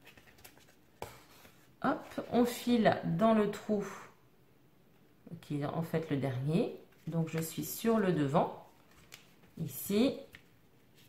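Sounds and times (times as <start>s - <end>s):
paper and thread rustling: 0.0s - 2.6s, 6.8s - 8.0s.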